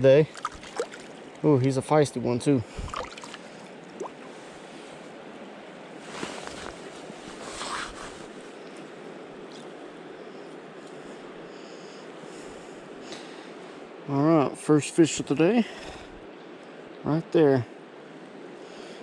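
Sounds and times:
stream water rushing: 0.0s - 10.0s.

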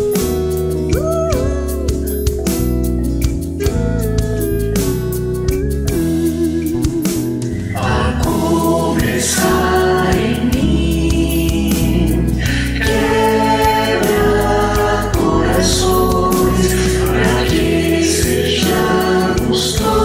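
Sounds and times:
band with keyboard guitars and drums: 0.0s - 20.0s
mixed choir singing worship song: 7.7s - 20.0s.

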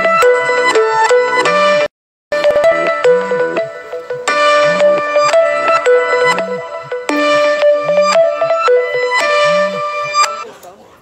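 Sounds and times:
phone ringtone melody: 0.0s - 10.4s.

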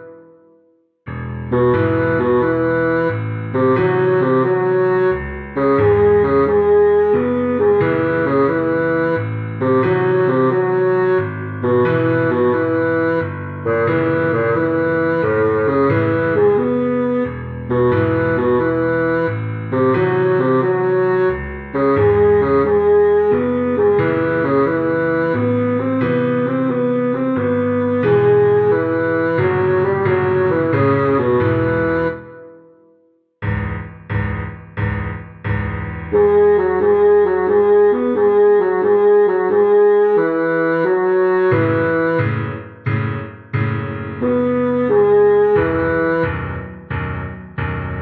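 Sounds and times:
bassoon melody: 0.0s - 48.0s.

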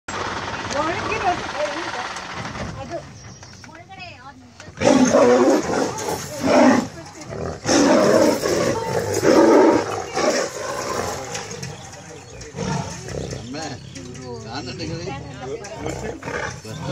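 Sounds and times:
tigers roaring and snarling: 4.7s - 16.9s.

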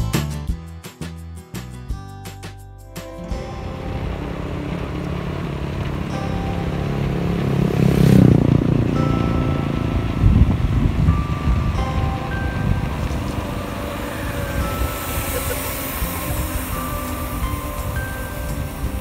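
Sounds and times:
faint bell-like music notes: 2.9s - 19.0s
wind buffeting microphone: 3.3s - 19.0s
bicycle rolling on concrete: 3.6s - 19.0s.

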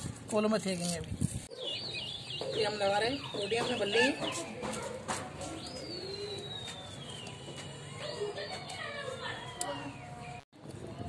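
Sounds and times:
birds calling: 1.5s - 10.4s.

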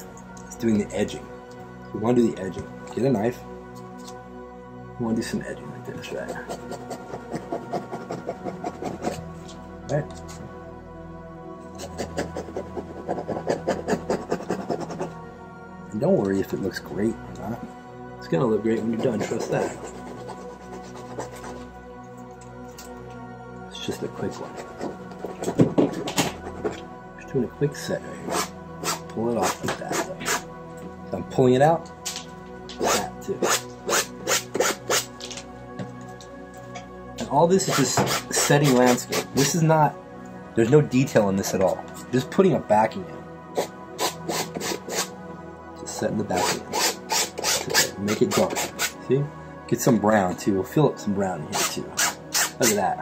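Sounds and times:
soft background music: 0.0s - 53.0s
paint tool scratching canvas: 6.4s - 9.2s, 11.8s - 15.1s, 18.8s - 21.6s, 32.8s - 35.1s, 43.6s - 45.1s, 46.4s - 48.9s
palette knife scraping on canvas: 11.8s - 15.1s.

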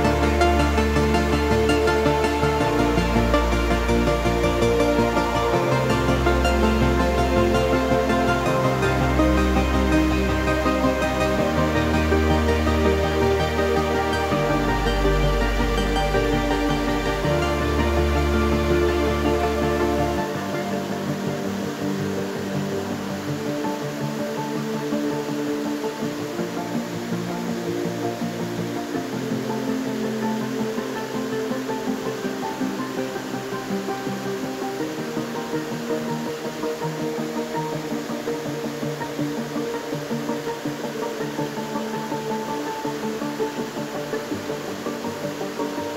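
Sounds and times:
soft music of held chords: 0.0s - 45.9s.

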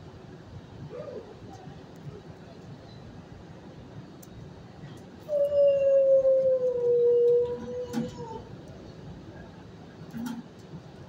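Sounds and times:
dog howling: 5.3s - 8.5s.

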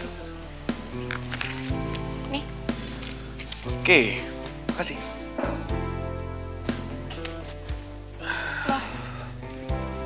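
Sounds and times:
soft sustained background music: 0.0s - 10.0s.

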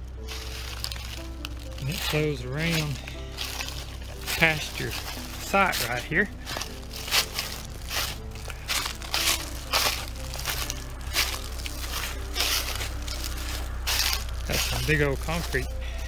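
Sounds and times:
footsteps crunching dry leaves: 0.0s - 16.0s.

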